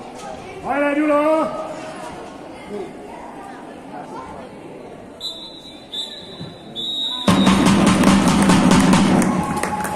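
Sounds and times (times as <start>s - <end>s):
spectators chattering: 0.0s - 7.9s.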